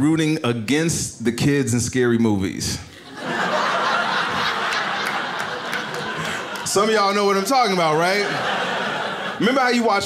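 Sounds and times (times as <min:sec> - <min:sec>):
audience laughing: 0:03.0 - 0:10.0.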